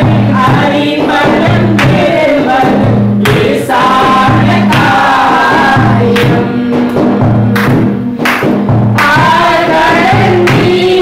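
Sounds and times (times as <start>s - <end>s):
women singing into microphones: 0.0s - 8.2s, 8.9s - 11.0s
rhythmic instrumental accompaniment: 0.0s - 11.0s.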